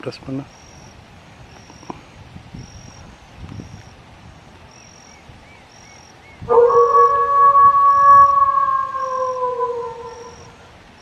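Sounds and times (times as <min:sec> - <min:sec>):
canid howl: 0:06.5 - 0:10.6.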